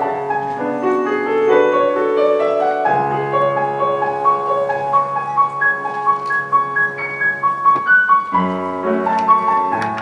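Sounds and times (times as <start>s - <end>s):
solo piano: 0.0s - 10.0s.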